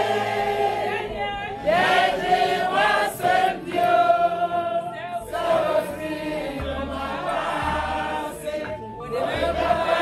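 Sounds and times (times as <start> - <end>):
women singing in unison: 0.0 - 10.0.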